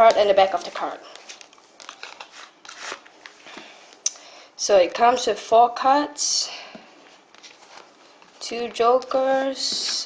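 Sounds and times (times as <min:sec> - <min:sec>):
cards sliding against cardboard: 0:02.0 - 0:03.5.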